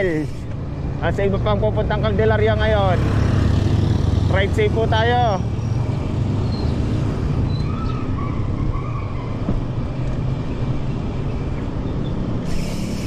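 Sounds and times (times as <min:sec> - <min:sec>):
bicycle tyres on road: 0:00.0 - 0:02.0, 0:05.3 - 0:13.0.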